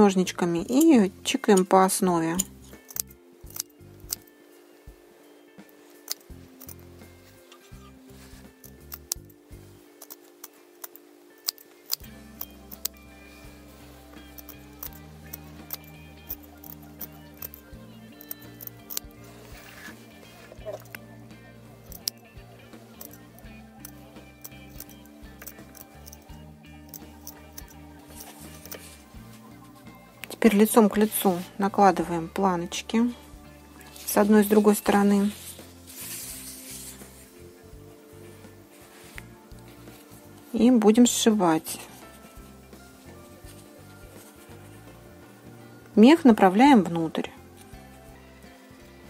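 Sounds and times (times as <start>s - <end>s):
quiet background music: 0.0s - 49.0s
shears snipping fabric: 5.9s - 9.4s, 10.0s - 21.0s.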